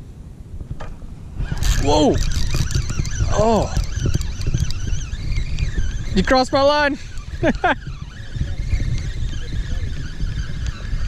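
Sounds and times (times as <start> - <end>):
wind on microphone: 0.0 - 11.0
microphone handling noise: 0.5 - 11.0
fishing reel clicks: 1.5 - 9.7.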